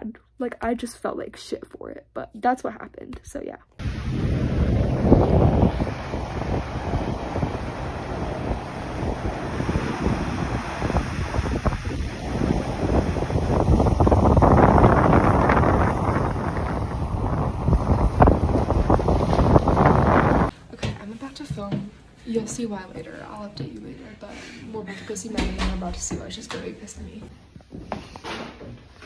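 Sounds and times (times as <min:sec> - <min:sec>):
surf breaking on rocks: 0:03.8 - 0:20.5
wind buffeting microphone: 0:03.8 - 0:20.5.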